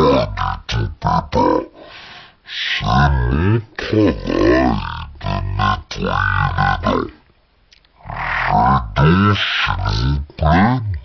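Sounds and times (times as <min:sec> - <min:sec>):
deep cartoon pig grunt: 0:02.7 - 0:07.2, 0:08.0 - 0:11.0.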